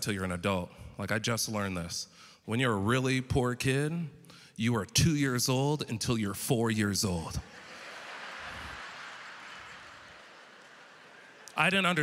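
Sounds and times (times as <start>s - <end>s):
audience laughing: 7.4s - 12.0s
audience clapping: 7.5s - 12.0s.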